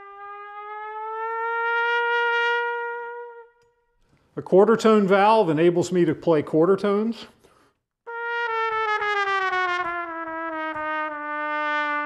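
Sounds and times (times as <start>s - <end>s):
trumpet holding a sinking note: 0.0s - 4.0s, 8.1s - 12.0s.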